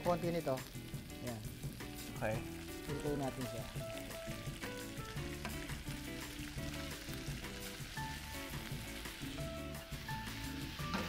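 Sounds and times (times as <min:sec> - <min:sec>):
food sizzling in a frying pan: 0:00.0 - 0:11.0
soft background music: 0:00.0 - 0:11.0.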